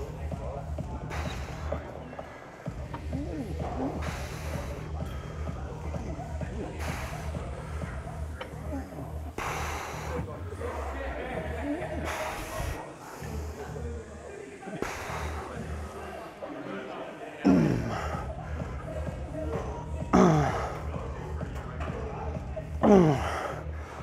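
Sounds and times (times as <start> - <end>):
gym music with steady beat: 0.0 - 16.2, 17.4 - 24.0
man breathing forcefully: 3.9 - 5.4, 9.3 - 10.2
man groaning: 22.8 - 23.3.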